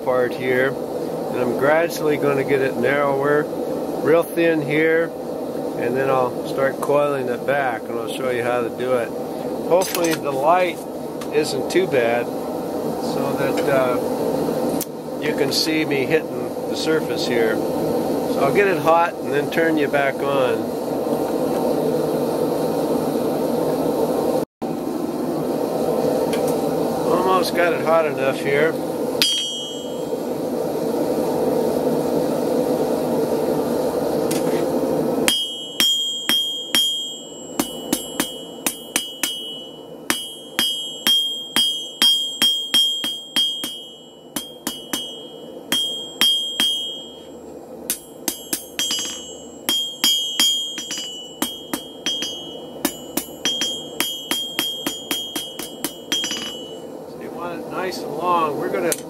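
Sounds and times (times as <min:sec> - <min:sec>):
forge burner rushing: 0:00.0 - 0:59.0
hammer striking steel on anvil: 0:29.2 - 0:30.2, 0:35.3 - 0:56.9.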